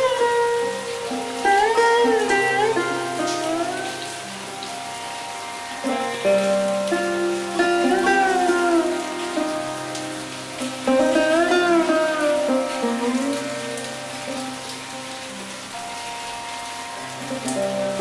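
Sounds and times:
sitar music: 0.0 - 18.0
steady rain: 0.0 - 18.0.

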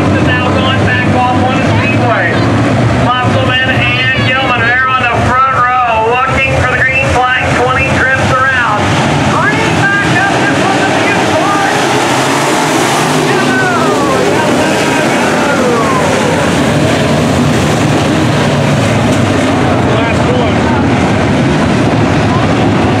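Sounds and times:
race car engines roaring past: 0.0 - 23.0.

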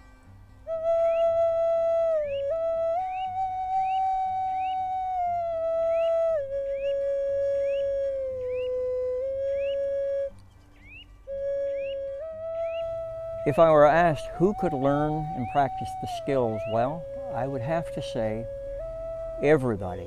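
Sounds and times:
wooden flute slow melody: 0.0 - 20.0.

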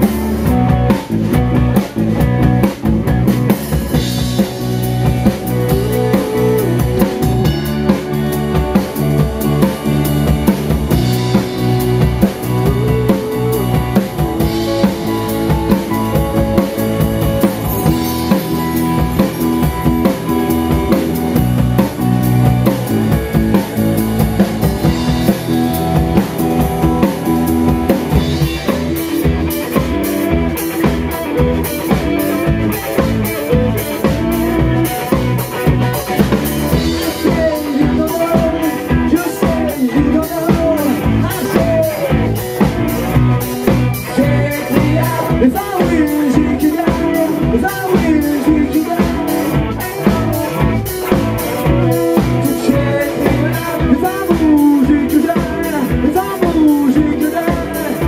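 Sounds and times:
lead guitar line bending pitch: 0.0 - 45.1
live rock band playing: 0.0 - 58.0.

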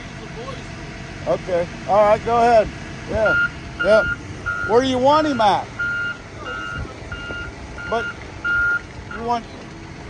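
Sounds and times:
reversing alarm beeps: 3.3 - 4.8, 5.8 - 9.3.

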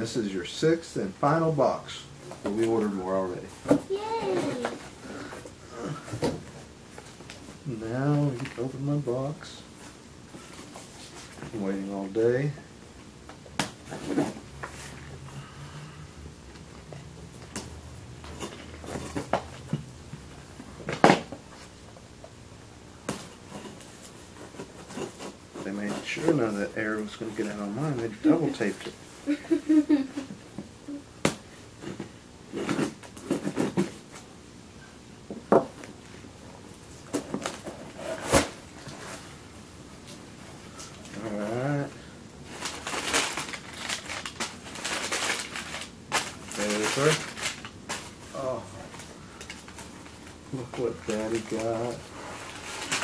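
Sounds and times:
tape and cardboard scraping and ripping: 31.9 - 34.2, 37.1 - 39.2
cardboard tearing: 37.4 - 39.2.

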